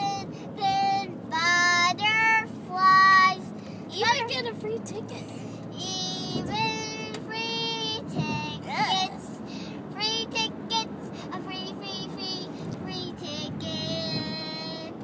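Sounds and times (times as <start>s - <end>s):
car cabin rumble: 0.0s - 15.0s
girl singing: 0.0s - 15.0s.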